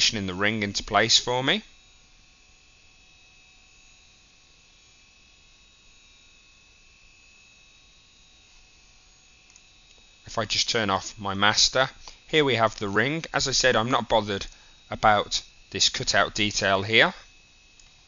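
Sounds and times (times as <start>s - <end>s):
faint hum and hiss: 0.0s - 18.0s.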